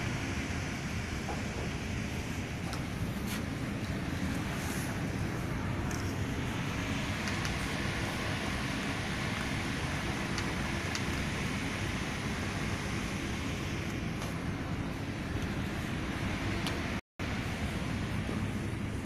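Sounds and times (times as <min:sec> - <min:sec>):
rushing noise with low rumble: 0:00.0 - 0:19.0.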